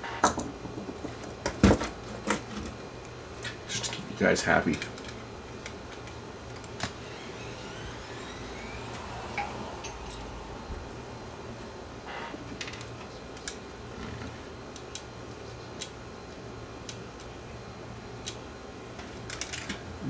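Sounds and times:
steady low hum: 0.7 - 19.2.

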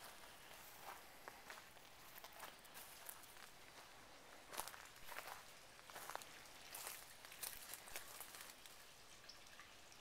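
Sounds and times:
faint footsteps walking: 0.0 - 8.7.

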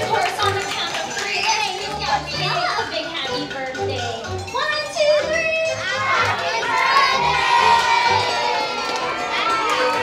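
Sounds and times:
children's excited chatter: 4.6 - 10.0.

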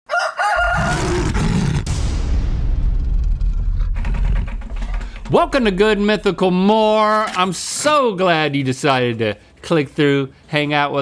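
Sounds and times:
high wavering crow-like cry: 0.1 - 1.8
low rumbling whoosh: 1.2 - 6.5.

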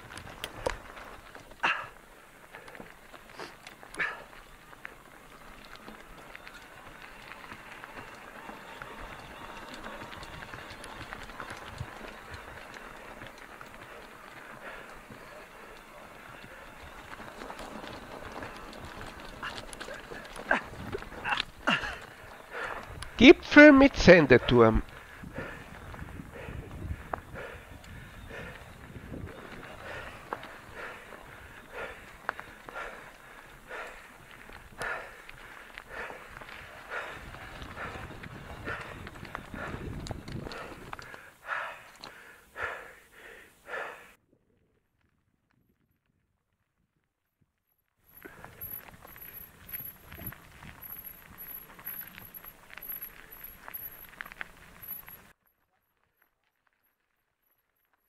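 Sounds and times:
bike tyres crunching on gravel: 0.0 - 43.9, 48.0 - 58.0.

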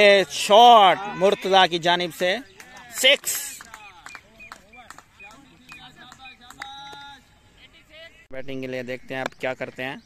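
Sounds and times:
drawn-out steady call: 0.0 - 8.3.

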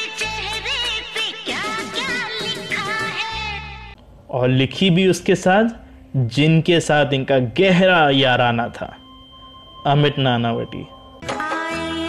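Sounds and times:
song with held sung note: 0.0 - 4.0, 11.2 - 12.0.

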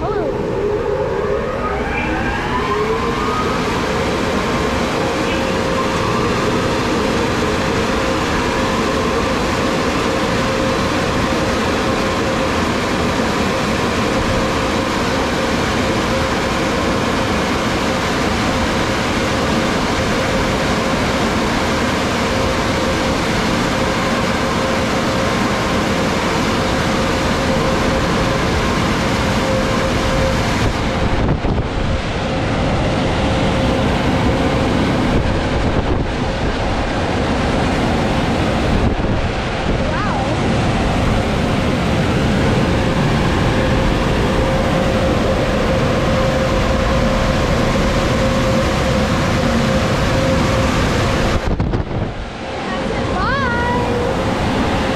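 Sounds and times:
car wash dryer blowers: 0.0 - 54.9.

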